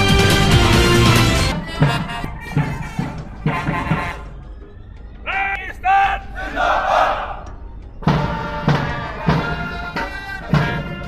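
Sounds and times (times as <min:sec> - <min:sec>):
person shouting command: 0:05.3 - 0:06.6
group shouting in unison: 0:05.8 - 0:07.4.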